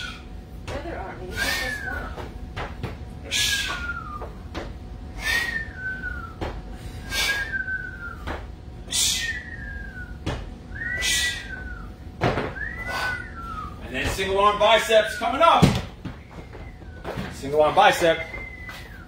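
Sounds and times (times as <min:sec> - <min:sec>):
short whistle: 0:10.8 - 0:11.8.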